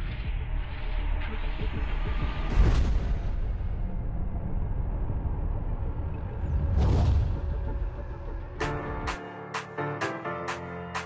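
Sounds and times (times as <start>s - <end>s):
deep low rumble: 0.0s - 8.6s.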